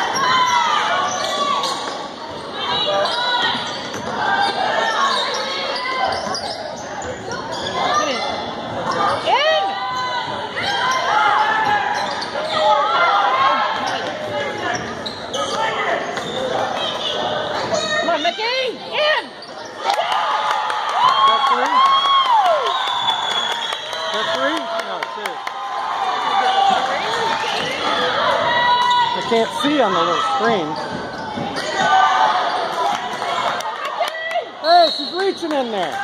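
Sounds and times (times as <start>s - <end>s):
shoes squeaking on floor: 0.1s - 12.8s, 13.8s - 18.4s, 28.6s - 33.0s.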